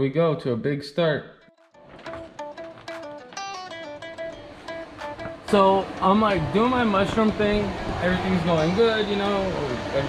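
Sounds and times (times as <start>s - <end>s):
picked guitar melody: 1.7s - 10.0s.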